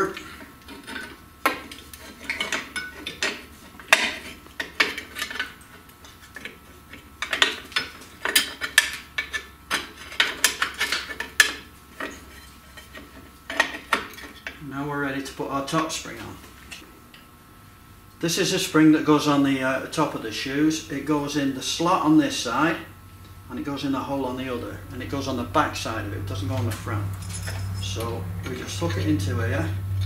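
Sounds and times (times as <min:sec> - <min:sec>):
brake shoes clinking and scraping: 0:26.3 - 0:29.2.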